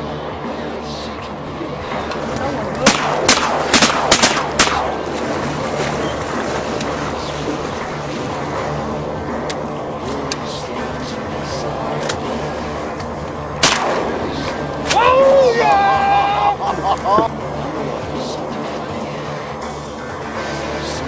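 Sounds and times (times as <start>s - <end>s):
background music: 0.0s - 21.0s
shotgun shots: 2.8s - 5.2s, 13.6s - 15.0s.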